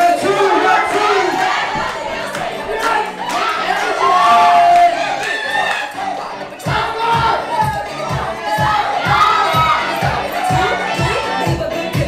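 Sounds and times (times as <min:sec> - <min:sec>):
crowd shouting and cheering: 0:00.0 - 0:12.0
dance track with heavy kick drum: 0:06.6 - 0:12.0.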